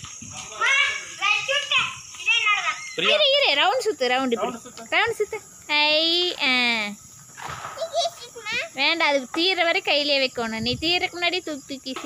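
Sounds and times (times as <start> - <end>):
child's voice: 0.4 - 3.2, 7.7 - 8.8
sparkler fizzing: 6.1 - 9.8.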